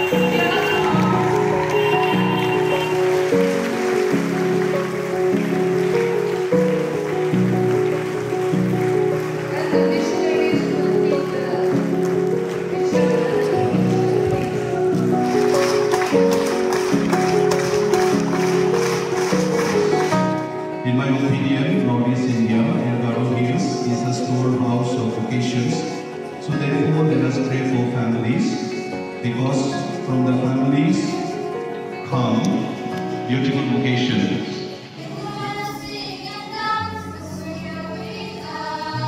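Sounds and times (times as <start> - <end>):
sustained chords music: 0.0 - 35.3.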